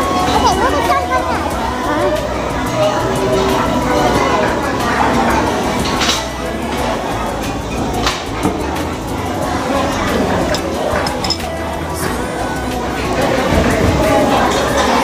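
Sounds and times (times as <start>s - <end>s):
background music: 0.0s - 15.0s
indistinct chatter: 0.0s - 15.0s
cutlery clinking on plates: 5.7s - 6.9s, 9.9s - 11.6s.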